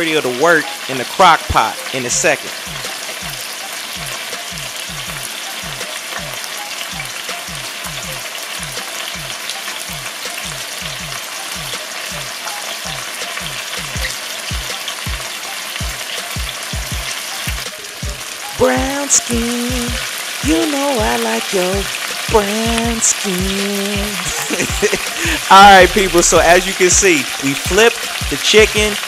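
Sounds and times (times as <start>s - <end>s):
chicken sizzling in hot oil: 0.0s - 29.0s.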